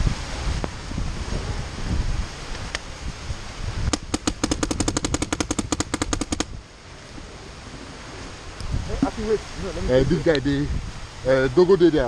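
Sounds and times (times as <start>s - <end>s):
paintball marker rapid firing: 3.9s - 6.6s.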